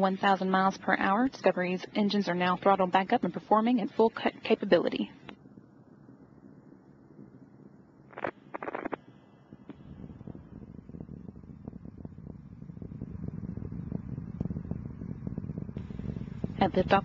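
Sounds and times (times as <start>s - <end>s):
distant rocket roar with crackles: 7.1s - 17.0s.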